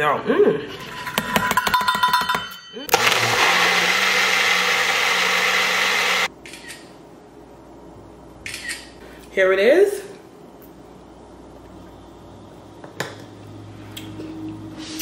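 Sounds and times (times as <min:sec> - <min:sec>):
blender running: 0:02.9 - 0:06.3.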